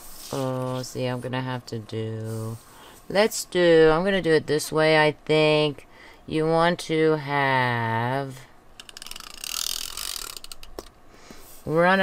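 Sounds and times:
tape runner gears whirring: 0:08.8 - 0:10.8.

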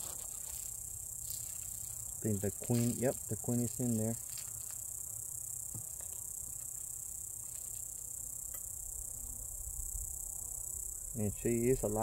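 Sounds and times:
insects chirring: 0:00.0 - 0:12.0.

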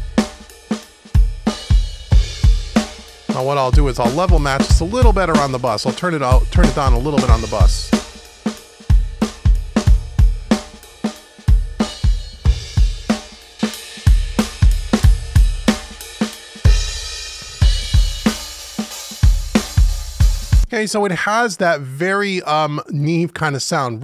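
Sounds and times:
drum kit groove: 0:00.0 - 0:20.7.

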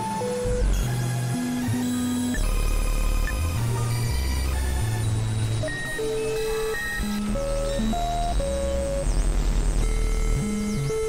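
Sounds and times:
synthesizer tones: 0:00.0 - 0:11.0
high synthesizer chirps: 0:00.4 - 0:11.0
low bass notes: 0:07.0 - 0:11.0.

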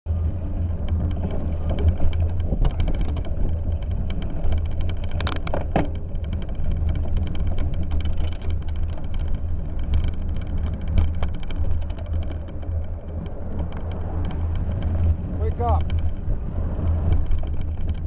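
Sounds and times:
bicycle rattles and clicks: 0:00.1 - 0:18.0
bicycle rumbling over snowy road: 0:00.1 - 0:18.0.

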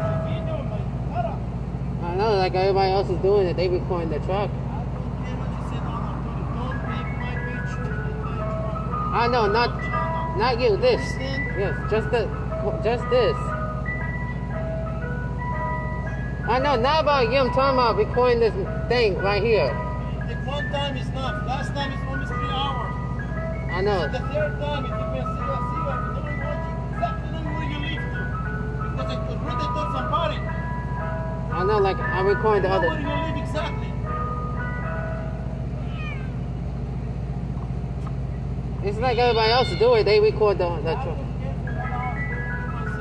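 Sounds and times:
ice cream truck chime melody: 0:00.0 - 0:43.0
truck engine humming: 0:00.0 - 0:43.0.

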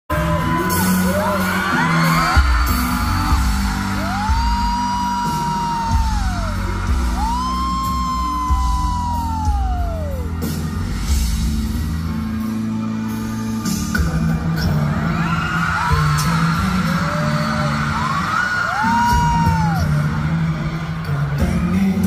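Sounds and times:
man singing: 0:00.1 - 0:10.2, 0:13.5 - 0:22.0
fans screaming: 0:00.1 - 0:10.8, 0:14.5 - 0:22.0
band playing with heavy beat: 0:00.1 - 0:22.0.

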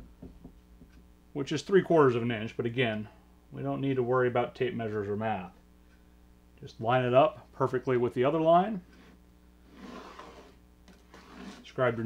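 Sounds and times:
low room hum: 0:00.0 - 0:12.0
marking tool scratching on wood: 0:08.9 - 0:11.8.

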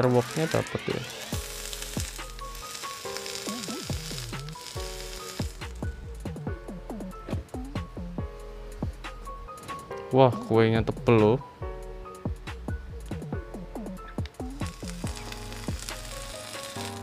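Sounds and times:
vape coil sizzling: 0:00.0 - 0:06.3, 0:14.2 - 0:17.0.

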